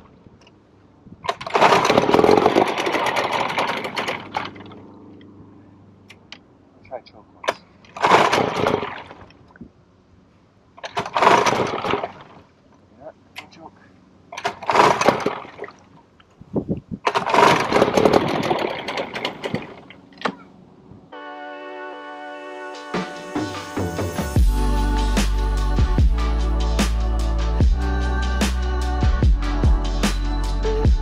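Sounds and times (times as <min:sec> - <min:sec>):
outboard engine rope pull-start: 0:01.2 - 0:05.0, 0:07.4 - 0:09.4, 0:10.8 - 0:12.5, 0:14.3 - 0:16.0, 0:17.0 - 0:20.5
music: 0:21.2 - 0:31.0.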